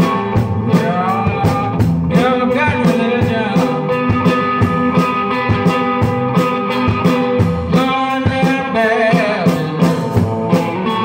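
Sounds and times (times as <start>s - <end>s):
amplified blues guitar: 0.0s - 11.0s
steady drum beat: 0.0s - 11.0s.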